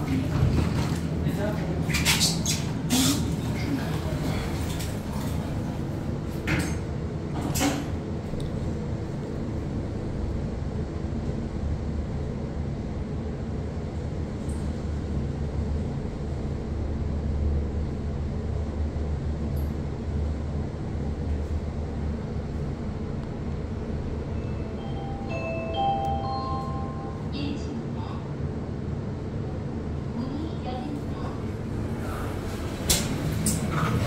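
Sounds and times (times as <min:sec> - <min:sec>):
elevator car rumble and hum: 0:00.0 - 0:34.0.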